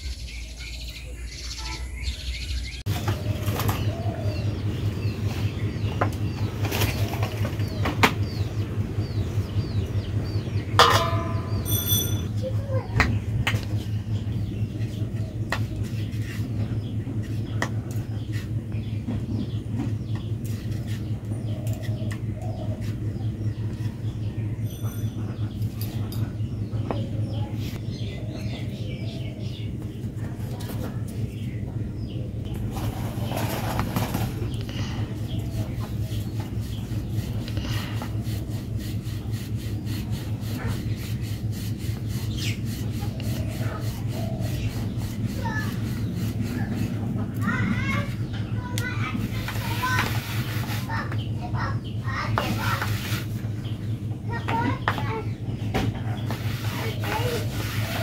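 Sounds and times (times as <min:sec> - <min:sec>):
low fluttering hum: 0:00.0 - 0:58.0
hand rubbing flour in bowl: 0:32.6 - 0:48.2, 0:49.1 - 0:51.1, 0:52.3 - 0:53.6, 0:56.2 - 0:58.0.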